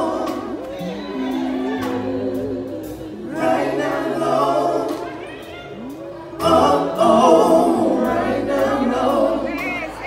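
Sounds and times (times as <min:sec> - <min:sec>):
male group singing in harmony: 0:00.0 - 0:05.2, 0:06.3 - 0:10.0
band accompaniment: 0:00.0 - 0:10.0.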